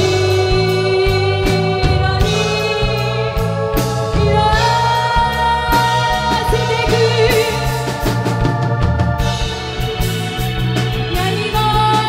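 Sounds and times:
bass guitar: 0.0s - 12.0s
drums: 0.0s - 12.0s.

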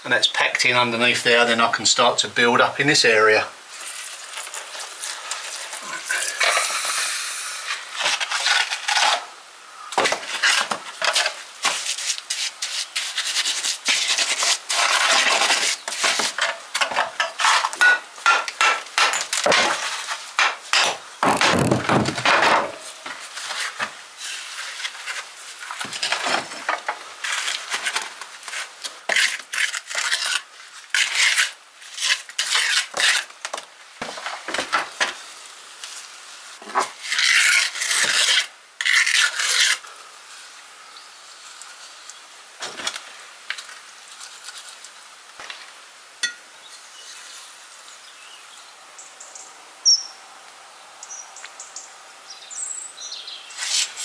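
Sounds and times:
trowel scraping mortar on stone: 7.7s - 9.3s, 10.0s - 21.0s, 27.2s - 33.4s, 36.6s - 39.8s, 53.6s - 54.0s.

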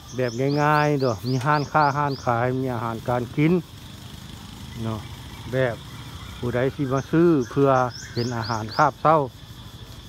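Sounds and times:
city street traffic hum: 0.0s - 10.0s
man talking: 0.1s - 3.6s, 4.8s - 5.8s, 6.4s - 9.3s.

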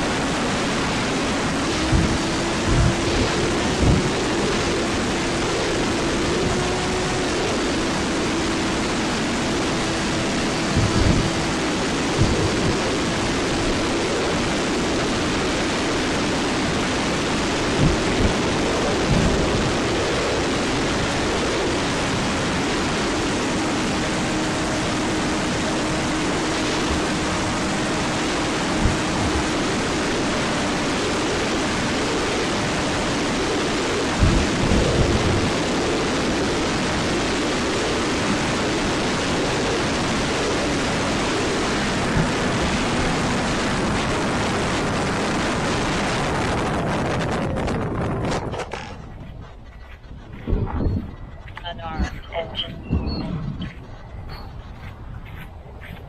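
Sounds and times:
buffeting thumps: 0.0s - 36.0s
electric motor and propeller hum: 0.0s - 56.0s
wind rushing over microphone: 0.0s - 56.0s.

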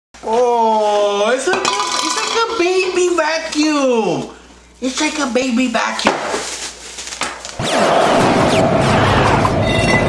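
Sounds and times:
bubble wrap crinkling: 4.8s - 7.6s.

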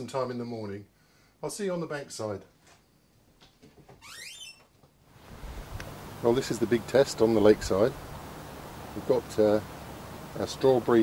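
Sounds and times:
fridge door squeak: 4.0s - 4.8s.

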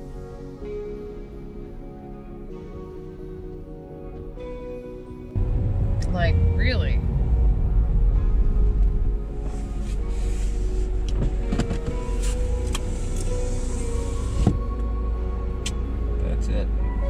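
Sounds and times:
music playing: 0.0s - 17.0s
vehicle rumble on snowy road: 5.4s - 17.0s.

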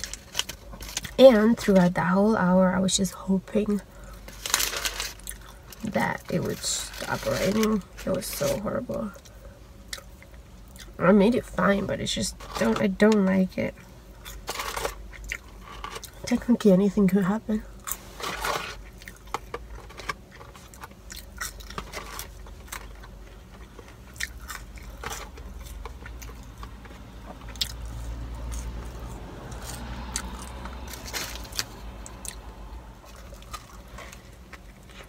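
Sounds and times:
low steady rumble: 0.0s - 35.0s
person chewing food: 9.2s - 11.0s, 14.1s - 16.2s, 18.8s - 35.0s.

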